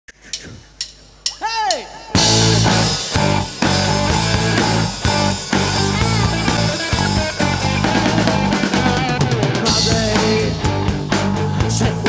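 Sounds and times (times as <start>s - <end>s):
drumstick clicks: 0.1s - 1.4s
hard rock band playing: 1.3s - 12.0s.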